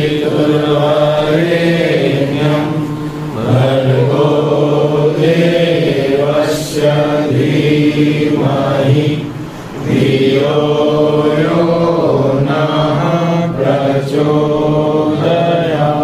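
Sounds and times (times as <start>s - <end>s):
man chanting: 0.0s - 7.0s.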